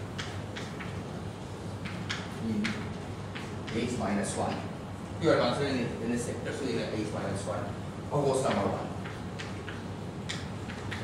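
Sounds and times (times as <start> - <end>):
chalk tapping on blackboard: 0.0 - 1.0, 1.8 - 4.7, 8.4 - 11.0.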